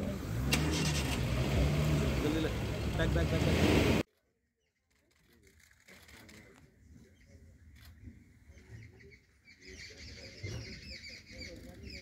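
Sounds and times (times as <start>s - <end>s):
vehicle engine running: 0.0s - 4.0s.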